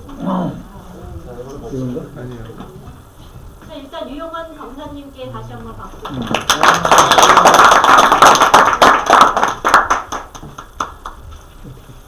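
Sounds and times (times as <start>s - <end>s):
audience applause: 6.0s - 11.2s.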